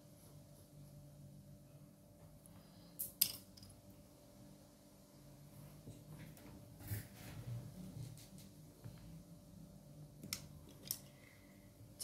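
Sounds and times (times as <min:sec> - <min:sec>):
pencil clinking on a hard desk: 0:03.0 - 0:03.8.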